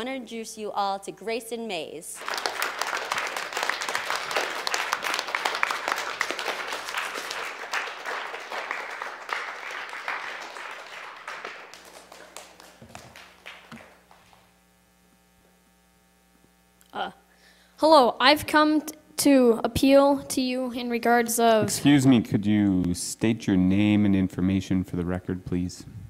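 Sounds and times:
small audience applauding: 2.2s - 14.5s
low steady hum: 10.8s - 26.0s.

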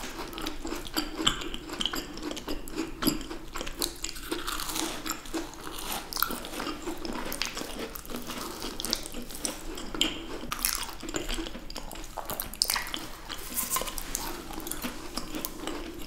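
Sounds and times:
biting and chewing macarons: 0.0s - 16.0s.

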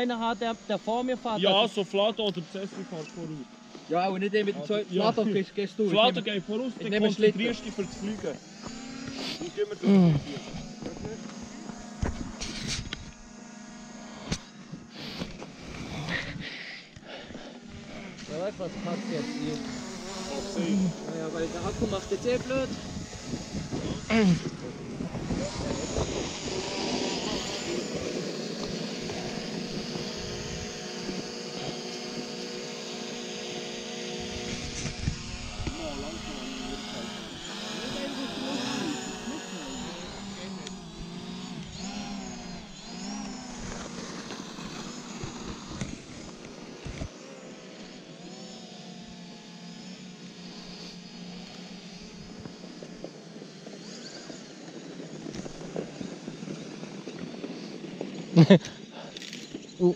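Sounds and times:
drone propellers whirring: 0.0s - 59.9s.

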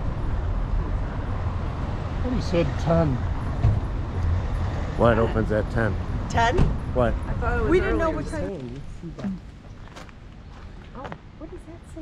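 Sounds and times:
road traffic rumble: 0.0s - 12.0s
person speaking: 5.0s - 5.9s.

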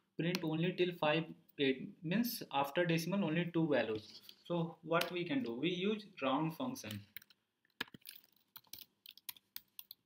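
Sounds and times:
computer keyboard typing: 6.8s - 10.0s.

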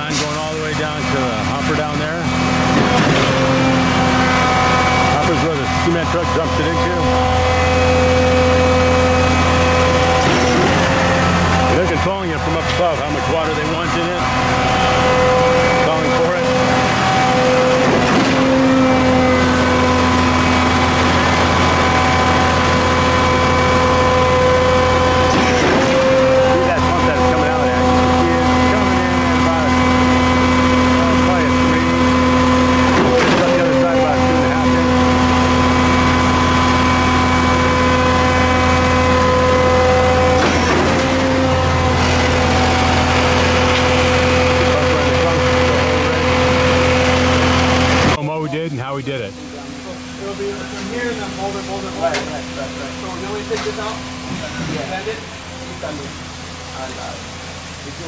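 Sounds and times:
concrete pump engine running: 0.0s - 58.0s.

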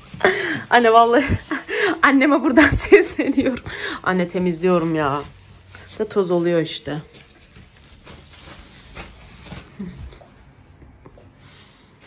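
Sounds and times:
tissue and phone rustling: 0.0s - 10.5s.

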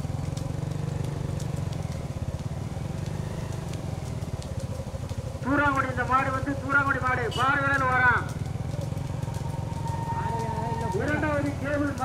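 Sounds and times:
faint clicks: 0.0s - 12.0s
motorcycle engines rumbling: 0.0s - 12.0s.

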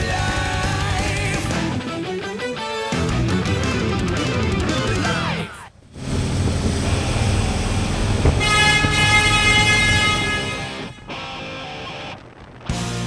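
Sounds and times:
road and wind noise: 4.6s - 13.0s
vehicle horn: 7.1s - 11.7s.

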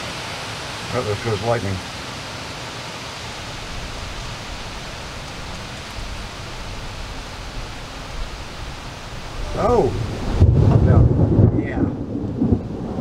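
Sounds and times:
storm hiss: 0.0s - 13.0s
distant thunder rumble: 8.2s - 13.0s.

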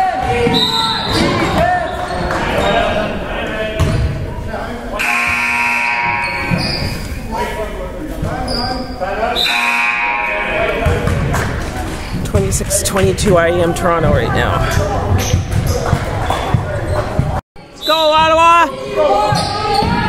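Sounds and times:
basketball bouncing: 3.8s - 4.2s, 10.8s - 11.7s, 12.3s - 17.4s
scoreboard buzzer: 5.0s - 6.6s, 9.4s - 10.6s
players calling out: 12.0s - 17.2s.

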